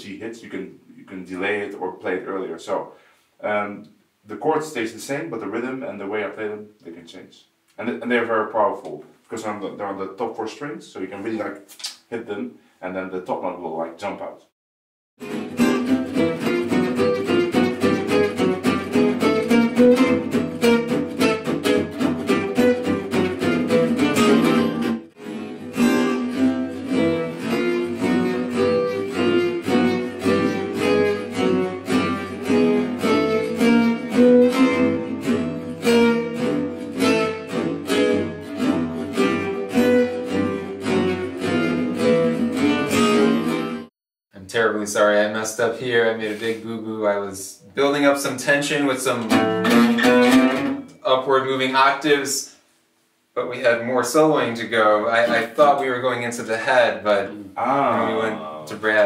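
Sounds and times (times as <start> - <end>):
fast lead guitar solo: 15.2 - 43.8, 49.2 - 50.9
strummed rhythm guitar: 15.2 - 43.9, 47.9 - 52.3, 53.6 - 59.0.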